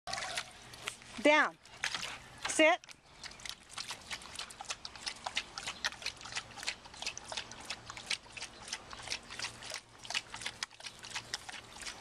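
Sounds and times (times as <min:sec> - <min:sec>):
dog splashing water: 0:00.1 - 0:12.0.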